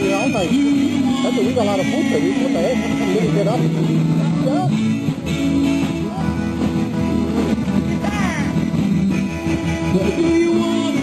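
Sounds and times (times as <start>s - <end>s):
live rock and roll band: 0.0s - 11.0s
person singing: 8.0s - 11.0s.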